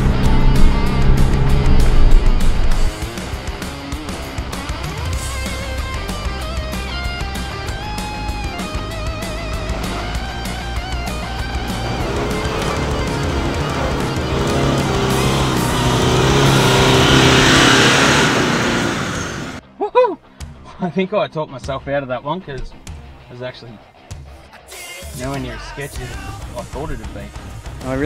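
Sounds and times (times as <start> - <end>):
electric guitar music: 0.0 - 19.6
truck engine working hard: 0.0 - 19.6.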